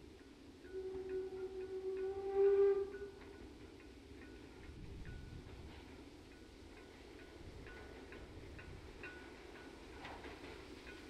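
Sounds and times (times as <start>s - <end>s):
steam locomotive whistle: 0.6s - 3.4s.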